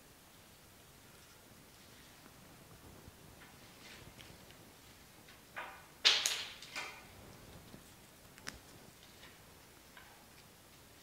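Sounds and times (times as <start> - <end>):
plant stems rustling: 1.0 - 5.1.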